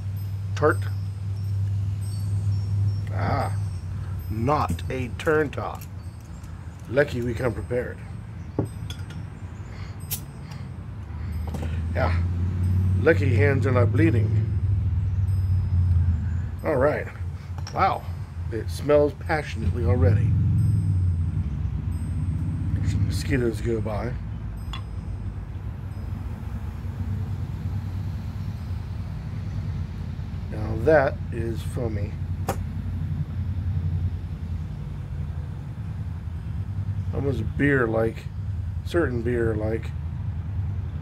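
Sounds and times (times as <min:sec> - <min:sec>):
steady low rumble: 0:00.0 - 0:41.0
bottle cap hiss-pop: 0:10.1 - 0:10.3.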